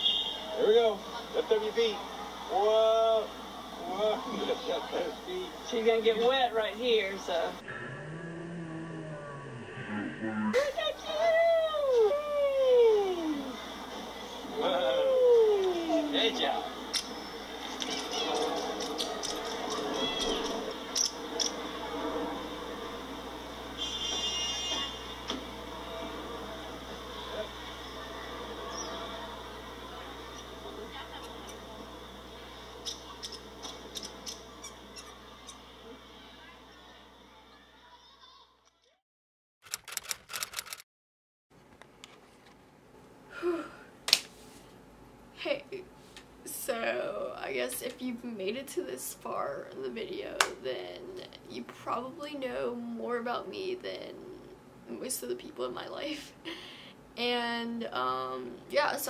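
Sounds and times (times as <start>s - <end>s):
typing clicks: 39.7s - 40.8s.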